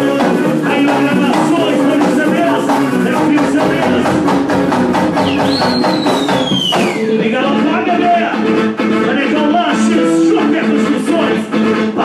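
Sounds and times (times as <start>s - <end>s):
live band music: 0.0s - 12.0s
high sliding whistling tone: 5.2s - 7.1s.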